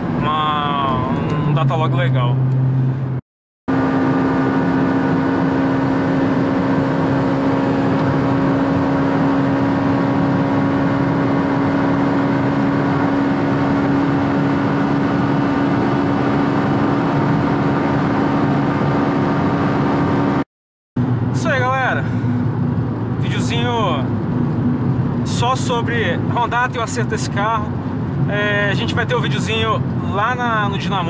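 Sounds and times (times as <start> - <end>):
car engine and road noise: 0.0 - 31.0.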